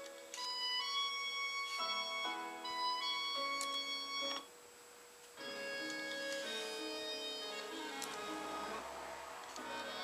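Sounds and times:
classical music on radio: 0.0s - 4.5s, 5.4s - 10.0s.

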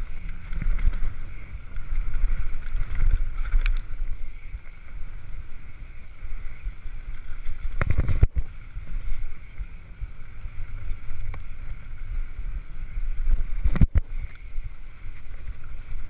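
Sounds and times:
bike rattling: 0.0s - 16.0s
wind buffeting microphone: 0.0s - 16.0s.

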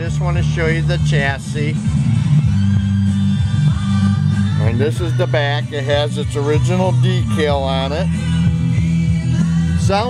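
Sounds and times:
music with strong bass line: 0.0s - 10.0s.

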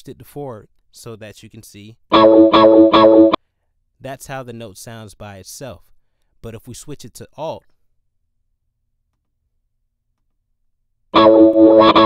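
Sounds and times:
guitar chord strikes: 11.2s - 12.0s.

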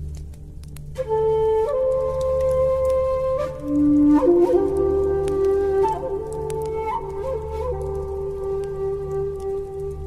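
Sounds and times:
flute melody: 0.8s - 10.0s.

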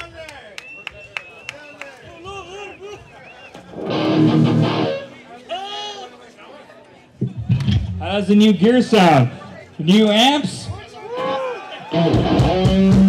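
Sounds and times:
crowd chatter: 0.0s - 13.0s
electric guitar chord: 3.9s - 5.0s.

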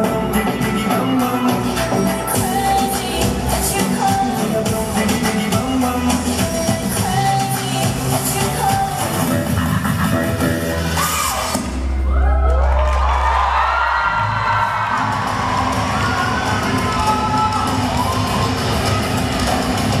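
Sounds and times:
dance music: 0.0s - 20.0s
audience cheering and whooping: 11.0s - 20.0s.

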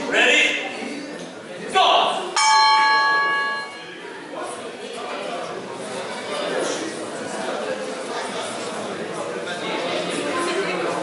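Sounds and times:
bell strike ringing: 2.4s - 4.0s.

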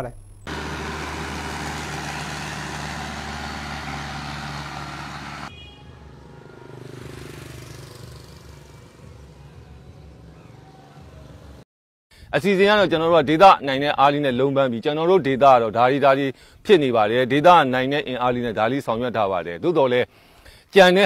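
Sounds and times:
vehicle engine humming: 0.5s - 11.6s.

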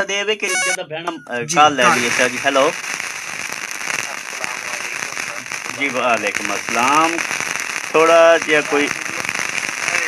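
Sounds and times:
crackling hissing telephone line: 1.5s - 10.0s.

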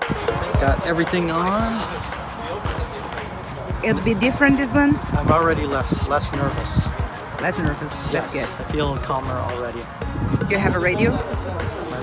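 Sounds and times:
faint indistinct voices: 0.0s - 12.0s
man speaking: 5.1s - 10.0s.

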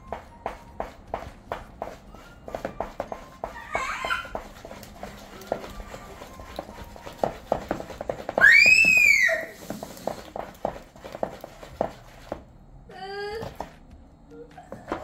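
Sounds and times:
spatula scraping plastic bowl: 0.0s - 8.4s, 9.5s - 12.4s.

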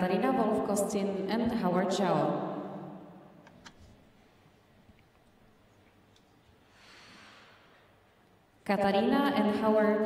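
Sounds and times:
soft exhale: 6.6s - 7.9s.

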